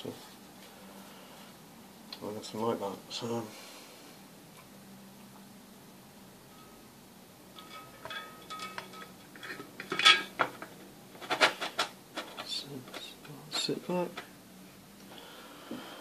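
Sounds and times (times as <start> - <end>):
metal case scraping and clinking: 7.6 - 13.8
metal clanks and knocks: 7.6 - 14.3.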